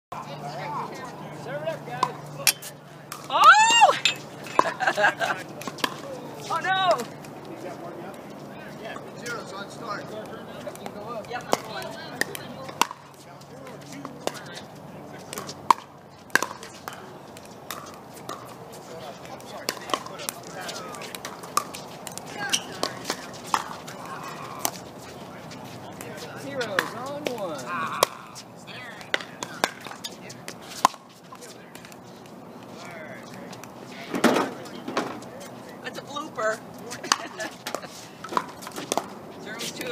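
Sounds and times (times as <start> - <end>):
voices chattering: 0.1 - 39.9.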